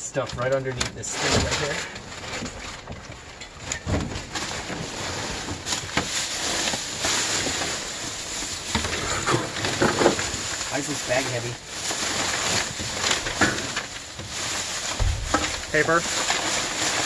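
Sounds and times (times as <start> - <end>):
plastic bags crinkling: 0.1 - 17.0
cardboard and paper shifting: 0.2 - 17.0.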